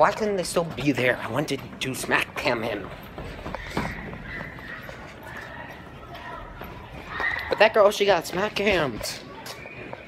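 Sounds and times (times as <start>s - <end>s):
faint voices: 0.0s - 10.0s
footsteps on hard floor: 2.3s - 7.6s.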